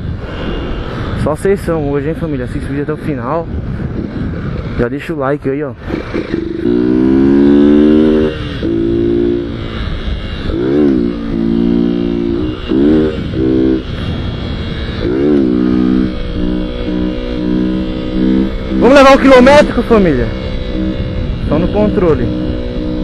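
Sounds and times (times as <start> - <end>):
motorcycle engine revving: 0.0 - 23.0.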